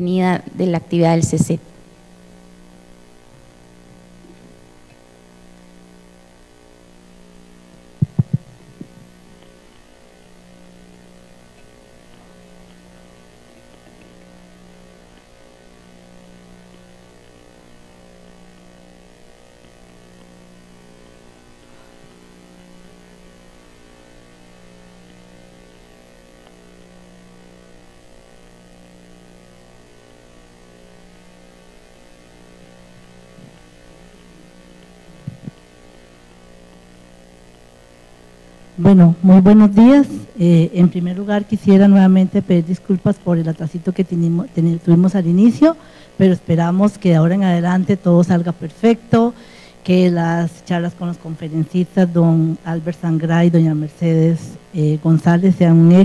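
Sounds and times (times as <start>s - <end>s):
electrical mains hum: 0.0s - 56.0s
sharp knocks: 8.0s - 8.5s.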